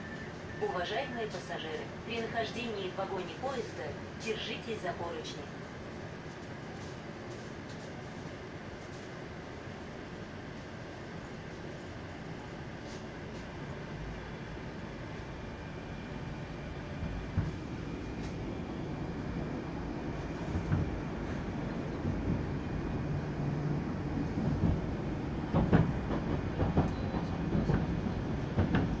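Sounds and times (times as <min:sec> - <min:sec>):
metro train rumble inside car: 0:00.0 - 0:29.0.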